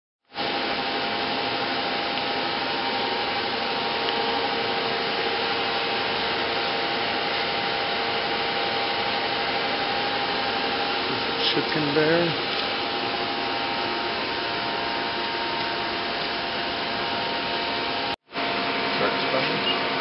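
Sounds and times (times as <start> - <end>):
steady machine whir: 0.3 - 20.0.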